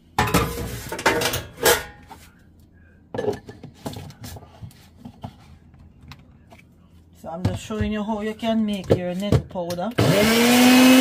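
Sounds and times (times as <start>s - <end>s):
dishes and utensils clattering: 0.1s - 2.2s, 3.1s - 4.4s
kitchenware knocks and clinks: 0.2s - 2.0s, 3.1s - 3.7s.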